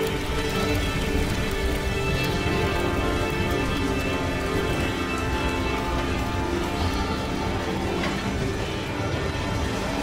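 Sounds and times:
burning rubble crackling: 0.0s - 10.0s
film score music: 0.0s - 10.0s.

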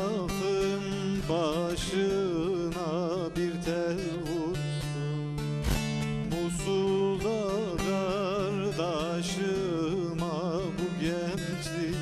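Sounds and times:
man singing with vibrato: 0.0s - 12.0s
plucked long-necked lute: 0.0s - 12.0s.

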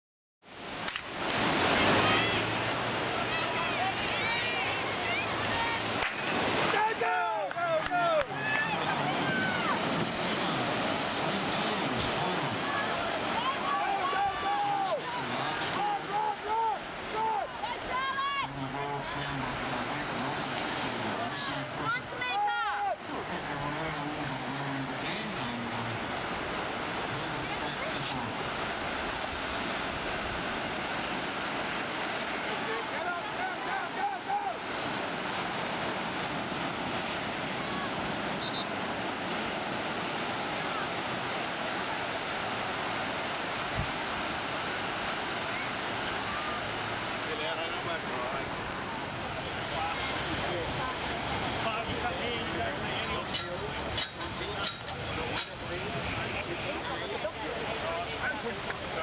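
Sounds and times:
waves breaking on a beach: 0.4s - 59.0s.

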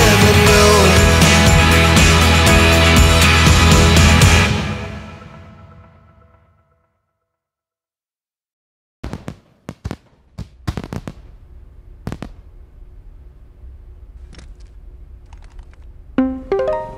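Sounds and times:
sharp cracks: 9.0s - 12.6s
low rumble: 11.2s - 16.2s.

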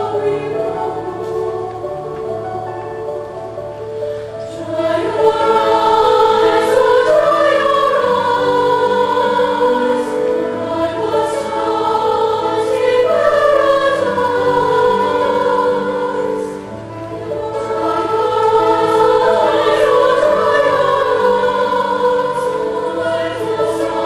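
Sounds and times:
women's choir singing: 0.0s - 24.0s.

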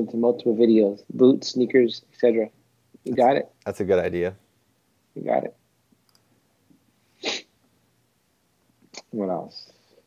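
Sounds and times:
person's sharp breath burst: 7.2s - 7.5s.

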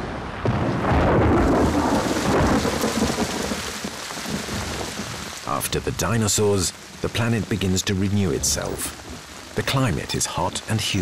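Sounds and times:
thunder rumbling: 0.0s - 6.4s
steady rain: 0.0s - 11.0s.

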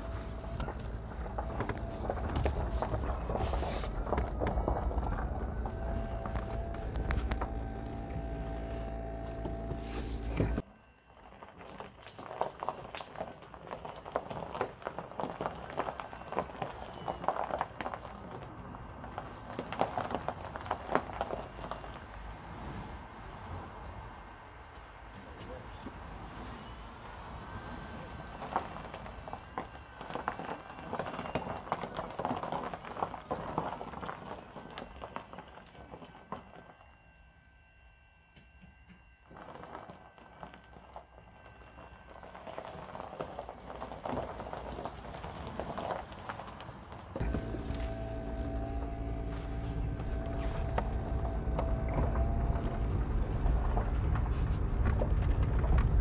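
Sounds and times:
tyres crunching over gravel: 0.0s - 37.0s, 39.2s - 56.0s.

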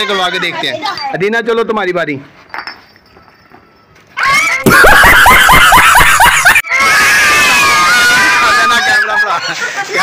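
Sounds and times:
man laughing loudly: 4.7s - 6.6s.

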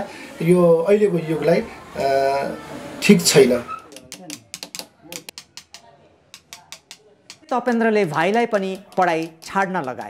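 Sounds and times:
small hammers tapping on metal: 3.9s - 10.0s.

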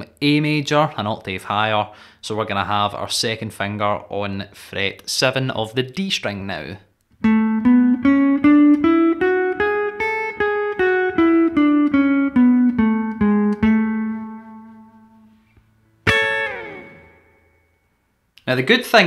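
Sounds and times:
guitar chord strummed: 7.2s - 15.3s, 16.0s - 17.9s
electric guitar picking scale notes: 7.2s - 18.0s.

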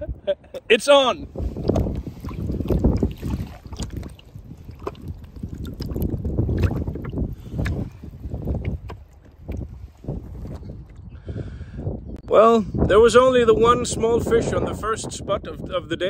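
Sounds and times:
wind rumbling on microphone: 0.0s - 16.0s
shallow water splashing: 1.4s - 10.9s.

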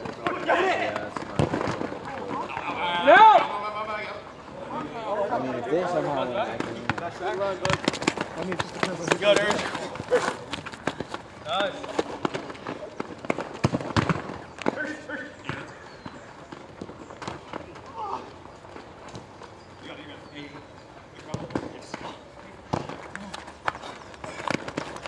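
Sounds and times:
soccer ball kicked and bouncing: 0.0s - 2.7s, 6.4s - 18.0s, 21.2s - 25.0s
distant shouting voices: 2.1s - 5.6s, 17.6s - 18.7s
running footsteps on court: 5.9s - 25.0s.

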